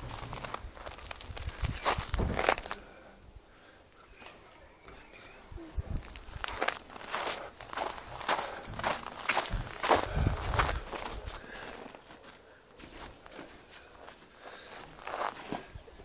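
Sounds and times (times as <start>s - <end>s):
footsteps crunching on icy snow: 0.0s - 2.9s, 5.9s - 16.0s.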